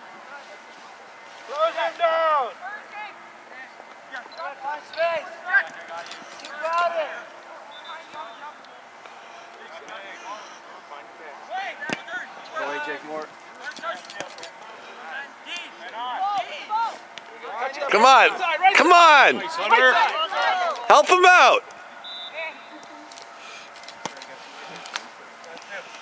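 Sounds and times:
players and spectators shouting: 0:14.8 - 0:22.8.

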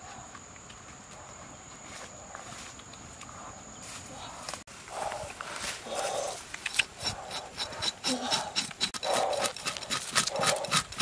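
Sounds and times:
knife sawing scaly hide: 0:05.8 - 0:11.0
sharp clicks: 0:06.5 - 0:11.0.

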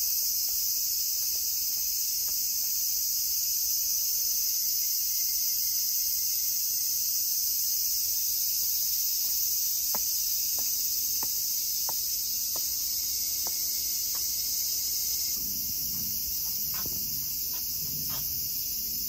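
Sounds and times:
cicadas buzzing: 0:00.0 - 0:19.0
faint footsteps: 0:08.6 - 0:18.6.

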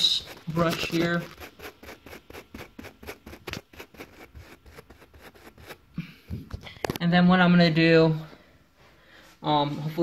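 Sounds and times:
brush scrubbing carpet: 0:00.0 - 0:05.8.

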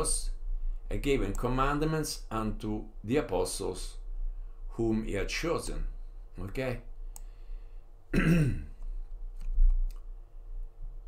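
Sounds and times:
man clearing his throat: 0:08.1 - 0:08.8.

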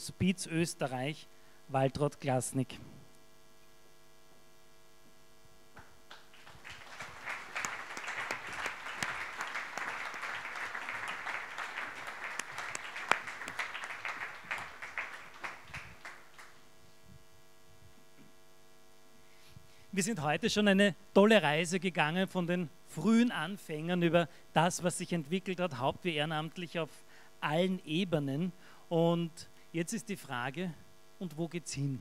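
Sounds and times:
steady electrical hum: 0:00.0 - 0:32.0
audience applause: 0:06.1 - 0:16.6.

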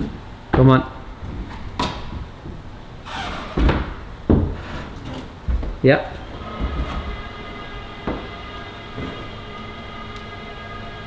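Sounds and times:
climbing shoes thudding on holds: 0:05.3 - 0:05.9.

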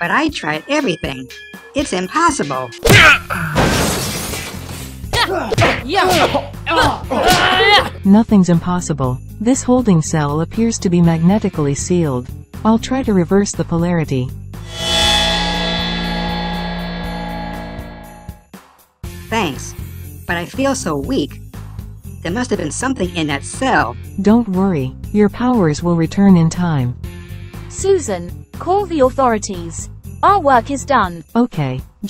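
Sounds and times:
cartoon crash shattering: 0:02.9 - 0:04.6
magic power sound effect: 0:14.7 - 0:18.3.

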